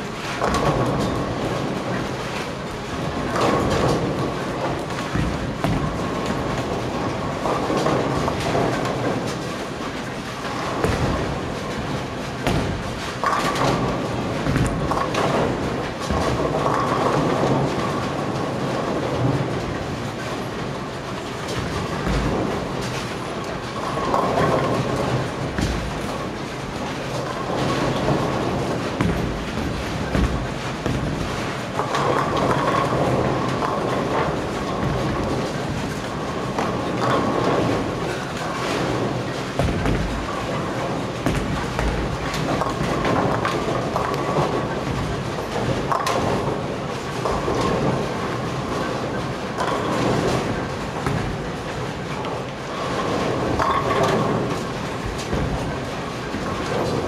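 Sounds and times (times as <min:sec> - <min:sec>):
bowling balls crashing into pins: 0:00.0 - 0:57.0
bowling balls rolling: 0:00.0 - 0:57.0.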